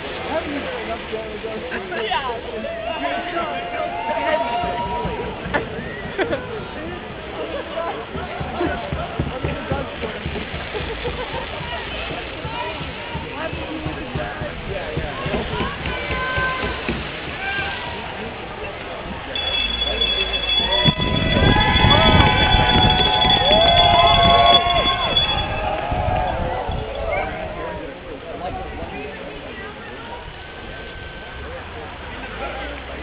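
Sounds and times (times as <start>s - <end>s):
crowd talking and calling out: 0.0s - 33.0s
people shouting: 2.6s - 6.4s, 19.7s - 28.0s
high-pitched tone: 19.4s - 25.8s.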